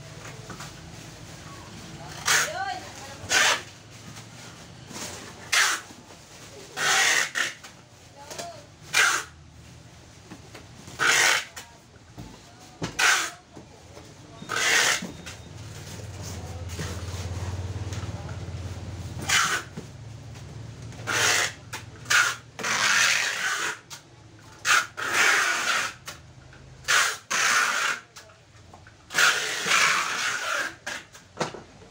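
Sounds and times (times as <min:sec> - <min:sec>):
plastic wrapping rustling: 0:00.0 - 0:06.8.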